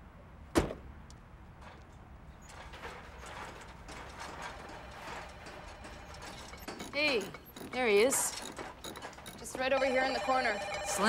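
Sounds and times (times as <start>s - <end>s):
shopping cart rattling on pavement: 2.4s - 11.0s.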